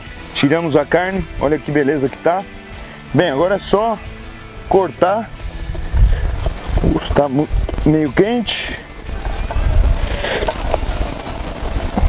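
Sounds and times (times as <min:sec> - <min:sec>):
low rumble: 0:05.4 - 0:12.0.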